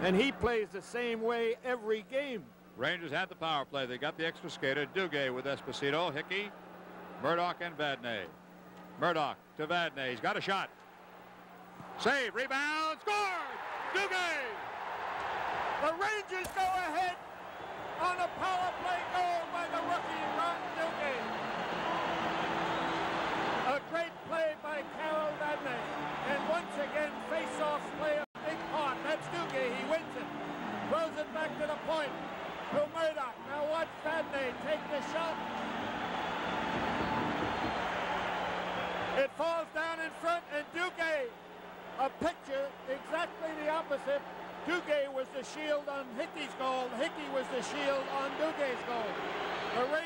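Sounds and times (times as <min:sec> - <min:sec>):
men talking: 0:00.0 - 0:06.5, 0:12.0 - 0:14.6, 0:18.0 - 0:21.4, 0:23.6 - 0:35.4, 0:42.0 - 0:50.0
arena crowd cheering: 0:04.0 - 0:08.3, 0:10.0 - 0:50.0.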